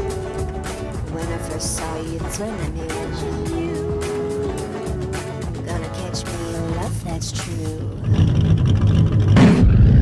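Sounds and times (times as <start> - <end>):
car engine deep rumble: 0.0 - 10.0.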